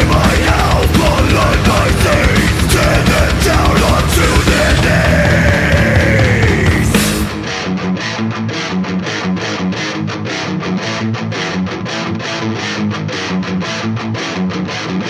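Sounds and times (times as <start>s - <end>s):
low bass notes: 0.0s - 7.7s
electric guitar picking: 0.0s - 15.0s.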